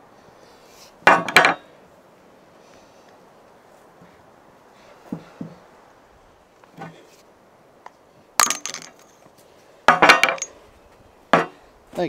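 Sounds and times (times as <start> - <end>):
metal parts clanking on steel table: 9.9 - 10.6.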